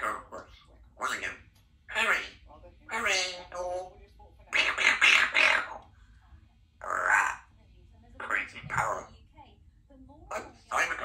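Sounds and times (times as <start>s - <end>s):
parrot chattering: 0.0s - 5.9s, 6.8s - 7.6s, 8.2s - 9.1s, 10.3s - 11.0s.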